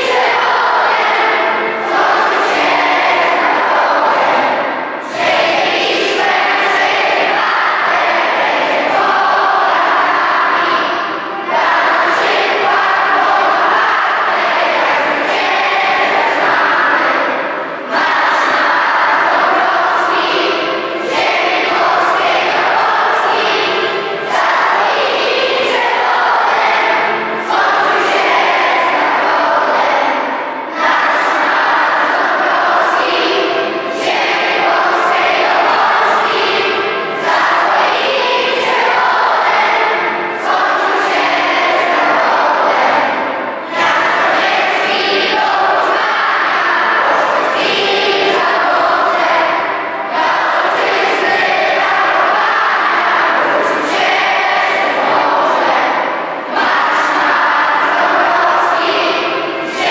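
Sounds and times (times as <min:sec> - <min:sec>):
children and adults singing: 0:00.0 - 0:59.9.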